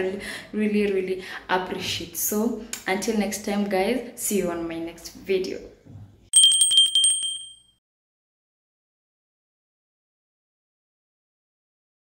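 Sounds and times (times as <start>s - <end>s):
bicycle bell ringing: 6.3s - 7.8s.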